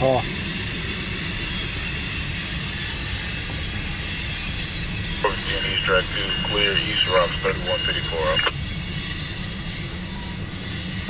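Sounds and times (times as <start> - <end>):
freight train rolling past: 0.1 - 11.0.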